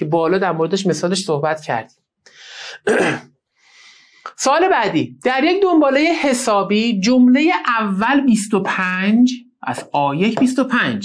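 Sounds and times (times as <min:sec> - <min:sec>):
man drawing breath: 0:02.2 - 0:02.8, 0:03.5 - 0:04.3
man clearing throat: 0:02.8 - 0:03.3.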